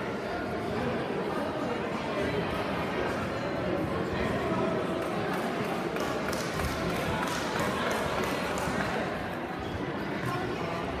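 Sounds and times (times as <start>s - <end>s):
chatter of many people echoing: 0.0s - 11.0s.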